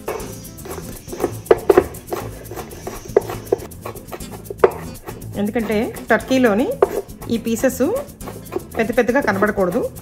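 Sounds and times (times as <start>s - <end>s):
knife chopping on wooden board: 0.0s - 7.2s, 8.0s - 9.5s.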